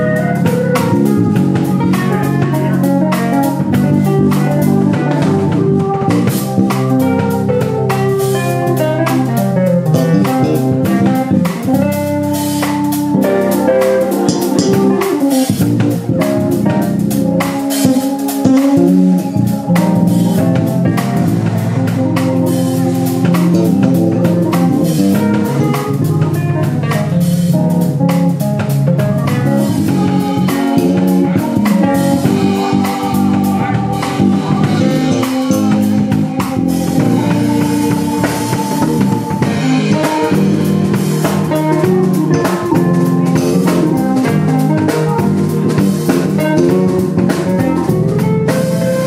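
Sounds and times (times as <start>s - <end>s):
jazz-funk band playing: 0.0s - 49.0s
busy drum strokes: 0.4s - 49.0s.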